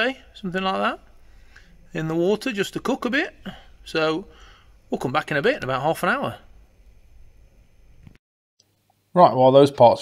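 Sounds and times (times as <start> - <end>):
low hum: 0.0 - 8.2.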